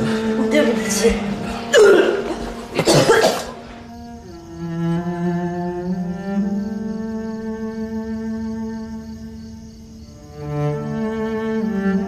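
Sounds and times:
quiet background music: 0.0s - 12.0s
slow cello string music: 0.0s - 12.0s
woman coughing: 1.6s - 3.6s.

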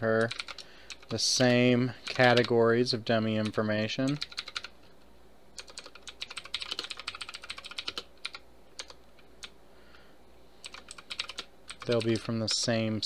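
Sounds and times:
computer keyboard typing: 0.2s - 2.6s, 3.4s - 4.7s, 5.6s - 9.5s, 10.6s - 12.3s.

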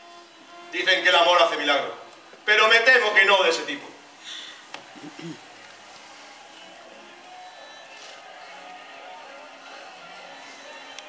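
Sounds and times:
hall background hiss: 0.0s - 11.0s
faint scattered tones: 4.0s - 11.0s.

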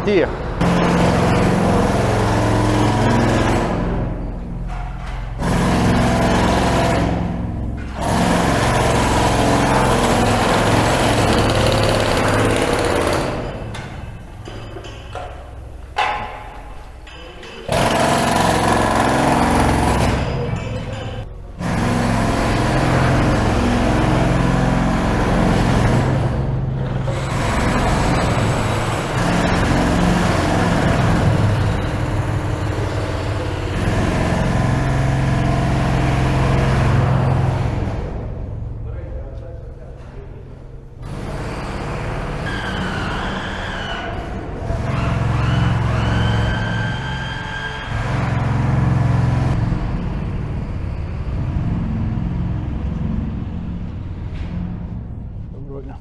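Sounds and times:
jackhammers breaking concrete: 0.6s - 15.2s, 17.5s - 38.7s, 41.0s - 52.4s.

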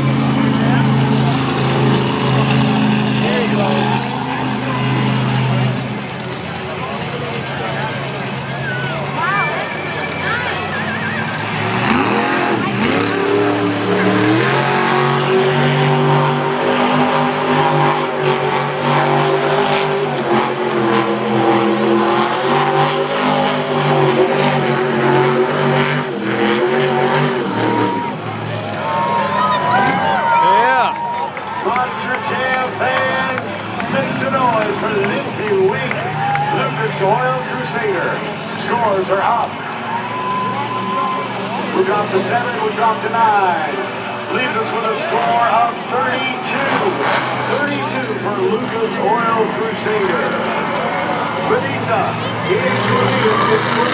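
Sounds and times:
voices: 0.0s - 15.6s, 27.4s - 53.9s
truck engine revving hard: 0.0s - 53.9s.

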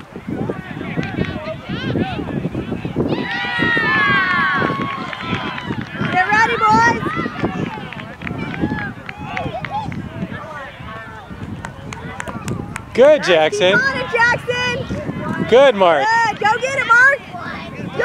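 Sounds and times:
chatter: 0.0s - 18.0s.

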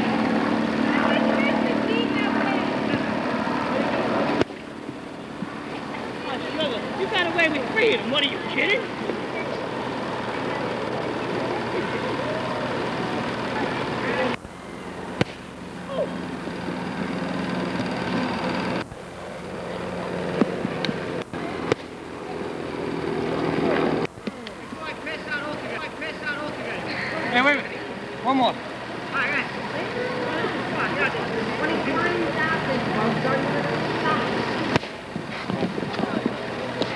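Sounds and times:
faint indistinct voices: 0.0s - 36.9s.

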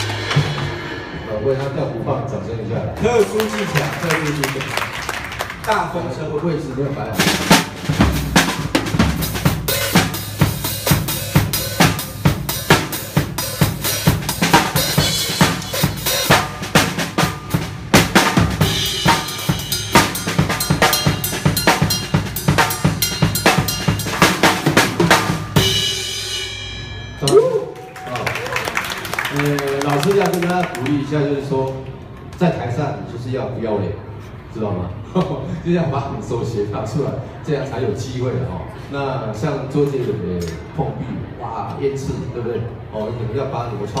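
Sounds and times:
acoustic drum kit beat with rolls: 0.0s - 1.8s, 7.1s - 27.8s
cymbals ringing: 9.6s - 17.6s, 18.6s - 27.8s.

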